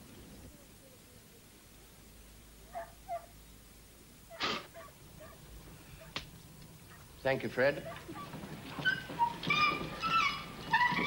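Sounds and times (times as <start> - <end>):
animal short cries: 4.3 - 4.8.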